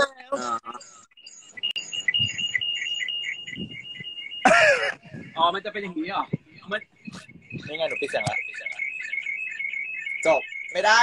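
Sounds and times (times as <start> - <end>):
rapid pulsing beeps: 0.8 - 11.0.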